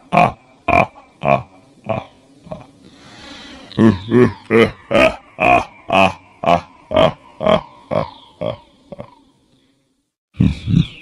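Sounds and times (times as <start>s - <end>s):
deep-voiced evil laugh: 0.0s - 2.7s, 3.7s - 9.3s, 10.4s - 11.0s.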